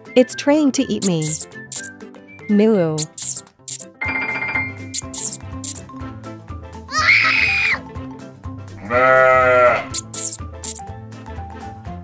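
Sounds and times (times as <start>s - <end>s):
background music: 0.0s - 12.0s
cartoon cow mooing: 8.8s - 10.0s.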